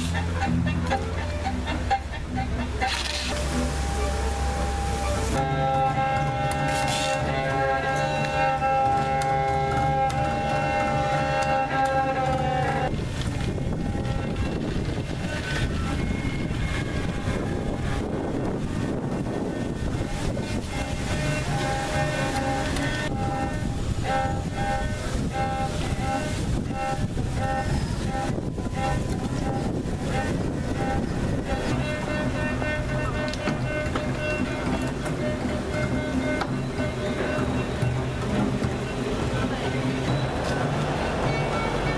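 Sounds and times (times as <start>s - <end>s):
bowed double bass and violin chord: 0.0s - 41.9s
dense rushing noise: 3.3s - 41.9s.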